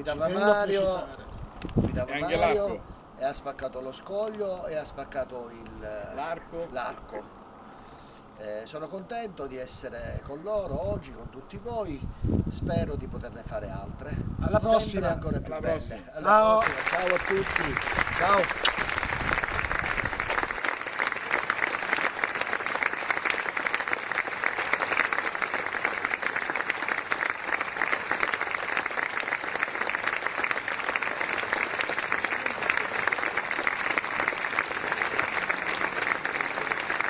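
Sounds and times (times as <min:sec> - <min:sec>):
crowd applauding: 0:16.6 - 0:37.0.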